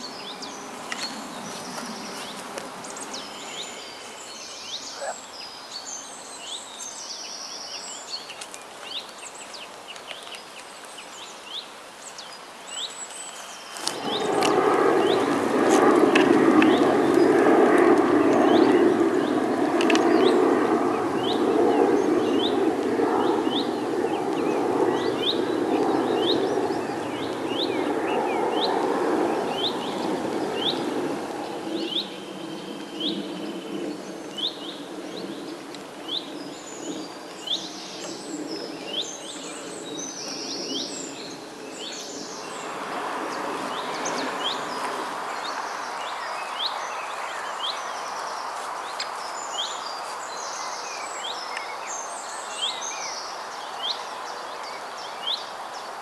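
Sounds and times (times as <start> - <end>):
songbird chirping: 0.0 - 15.4, 31.7 - 56.0
steady rushing noise: 0.0 - 56.0.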